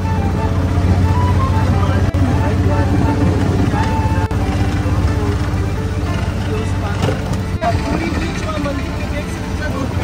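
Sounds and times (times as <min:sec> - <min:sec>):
auto-rickshaw engine running: 0:00.0 - 0:10.0.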